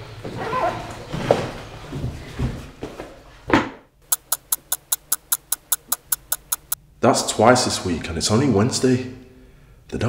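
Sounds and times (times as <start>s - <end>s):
rapid even ticking: 4.0s - 6.8s.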